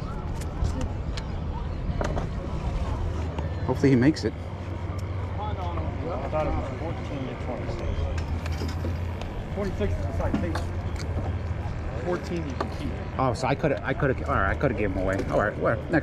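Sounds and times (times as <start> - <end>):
background chatter of people: 0.0 - 16.0.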